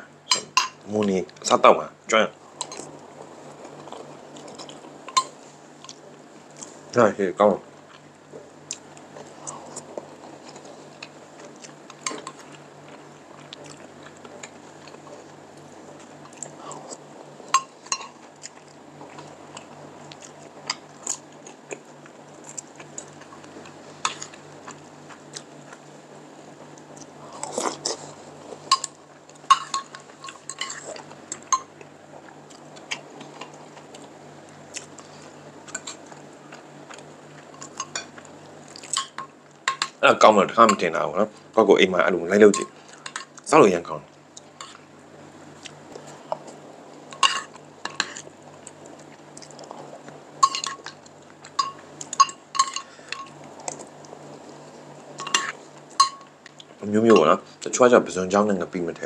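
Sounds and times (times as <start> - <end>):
mouth eating noises: 26.8 - 39.2
cutlery clinking on ceramic plate: 29.5 - 30.8, 50.4 - 50.9, 51.6 - 53.3, 55.2 - 56.3.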